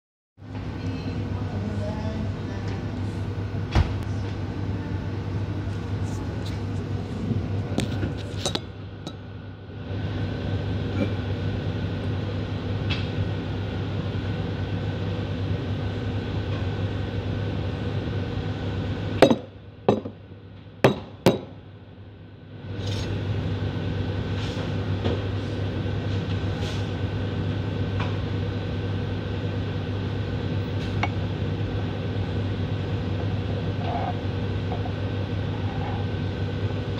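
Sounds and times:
steady background hum: 0.4s - 36.9s
hard objects knocking on counter: 19.2s - 20.2s.

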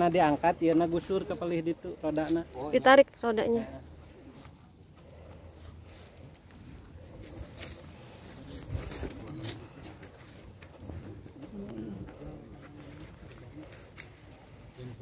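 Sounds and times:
faint murmuring voices: 3.8s - 15.0s
bird cooing: 7.1s - 10.0s.

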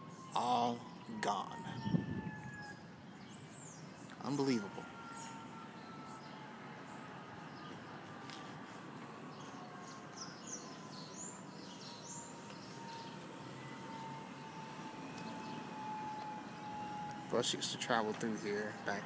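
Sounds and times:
faint outdoor background noise: 0.0s - 19.0s.

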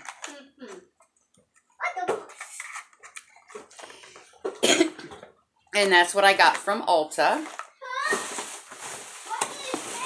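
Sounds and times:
woman's coughing laugh: 4.6s - 5.1s.

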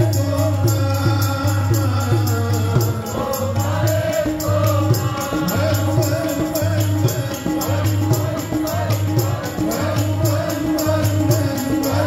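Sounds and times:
congregation singing: 0.0s - 12.0s
harmonium: 0.0s - 12.0s
tabla: 0.0s - 12.0s.

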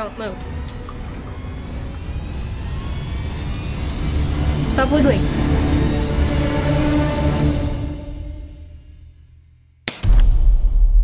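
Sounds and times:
high tone gliding upward: 0.0s - 8.0s
low rumbling drone: 0.0s - 9.5s.

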